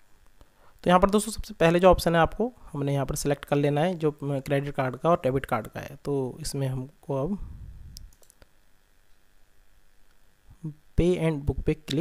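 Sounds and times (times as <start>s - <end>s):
room hiss: 0.0s - 12.0s
computer mouse clicks: 7.9s - 9.2s.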